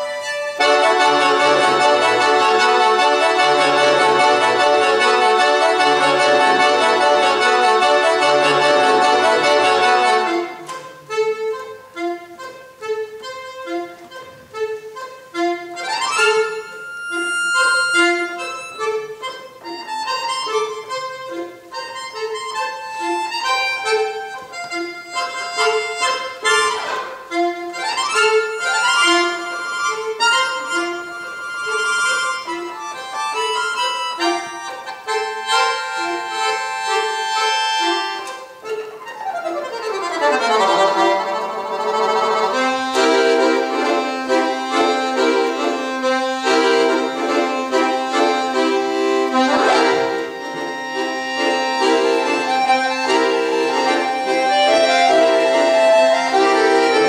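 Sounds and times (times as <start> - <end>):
piano accordion solo: 0.0 - 57.0.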